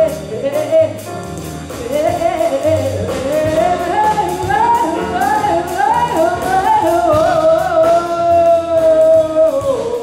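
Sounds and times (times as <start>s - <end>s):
drum kit: 0.0s - 10.0s
grand piano: 0.0s - 10.0s
plucked double bass: 0.0s - 10.0s
woman singing jazz melody: 0.0s - 10.0s.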